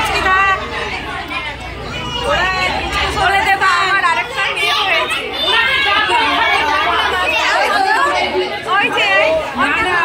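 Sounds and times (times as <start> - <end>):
women chattering: 0.0 - 10.0.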